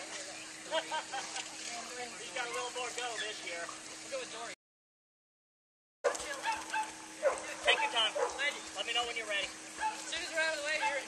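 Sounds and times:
dog barking and yipping: 6.1 - 8.6, 9.8 - 10.1, 10.8 - 11.0.

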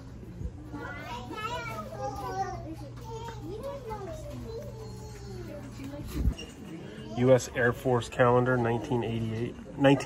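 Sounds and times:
child's voice: 0.7 - 6.3.

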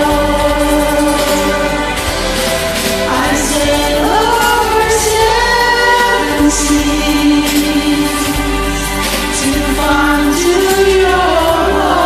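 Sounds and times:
karaoke backing track: 0.0 - 12.0
women singing: 0.0 - 12.0.

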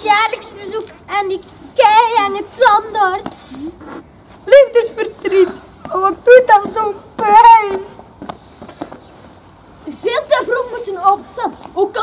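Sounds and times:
children reciting a poem: 0.0 - 3.8, 4.4 - 8.1, 9.8 - 12.0
short hiss: 3.3 - 4.1.

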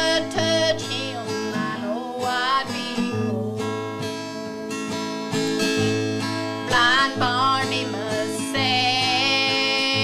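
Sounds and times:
acoustic guitar strummed chords: 0.0 - 10.0.

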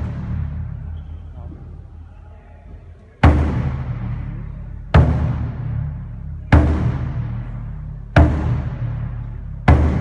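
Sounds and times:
taiko drum boom: 0.0 - 1.0, 3.2 - 10.0.

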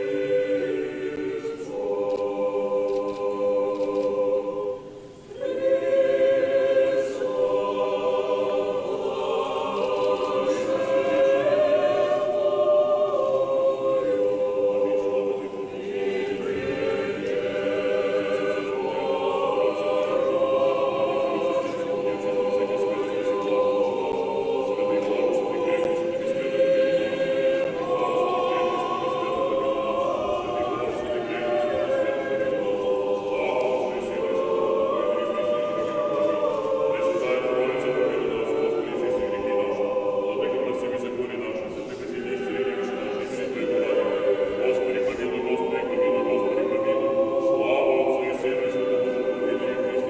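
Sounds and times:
choir singing unaccompanied: 0.0 - 50.0.

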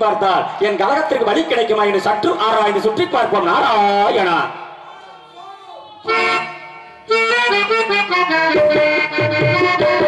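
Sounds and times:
harmonium chord: 6.0 - 10.0.

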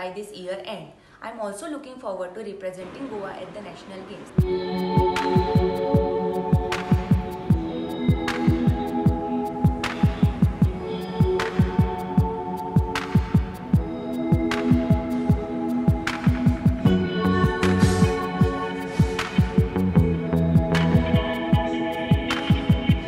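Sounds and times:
deep kick drum: 4.4 - 23.0
electronic music: 4.4 - 23.0
sharp clap: 6.7 - 7.2, 9.8 - 10.3, 13.0 - 13.4, 14.5 - 14.8, 16.1 - 16.6.

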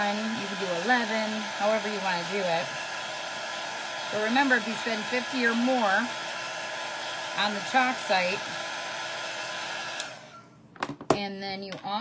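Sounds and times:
heat tool fan blowing: 0.0 - 10.6.

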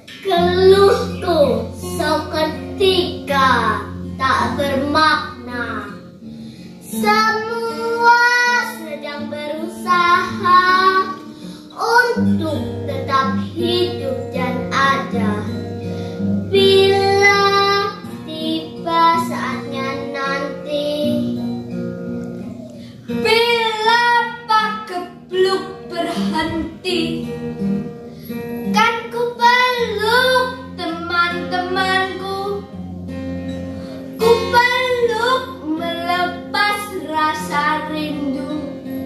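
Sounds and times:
strummed acoustic guitar: 0.0 - 39.0.

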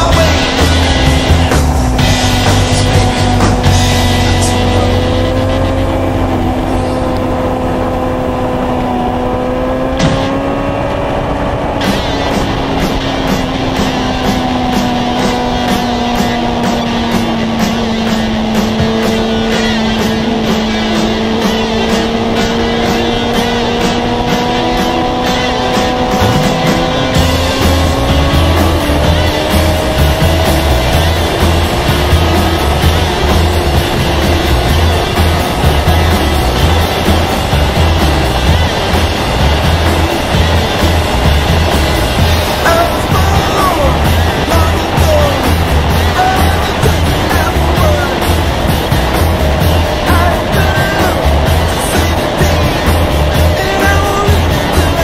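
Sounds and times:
motorcycle engine cruising: 0.0 - 55.0.

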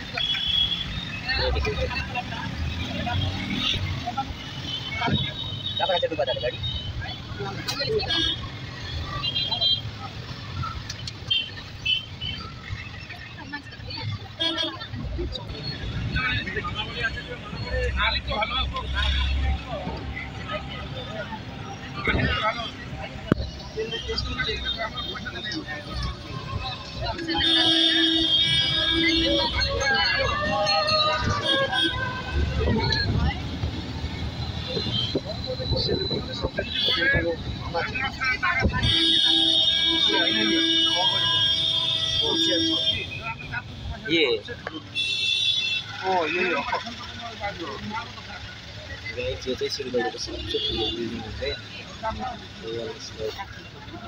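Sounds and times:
engine and road rumble: 0.0 - 54.0
people's voices: 0.0 - 54.0.

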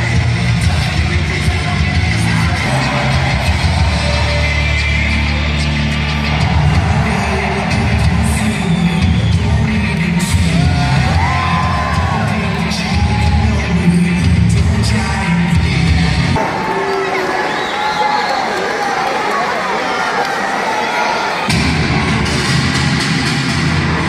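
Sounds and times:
rock music over loudspeakers: 0.0 - 17.2, 21.4 - 24.0
crowd yelling and cheering: 0.0 - 24.0.

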